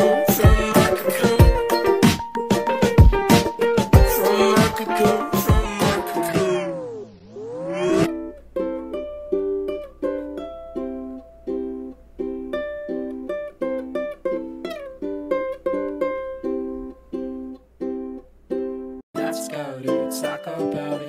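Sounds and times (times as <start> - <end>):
ukulele playing chords: 0.0 - 21.0.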